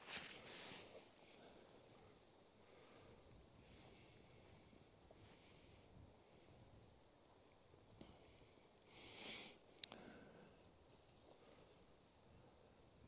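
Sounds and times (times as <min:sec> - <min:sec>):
soft hissy rustles: 0:00.0 - 0:13.0.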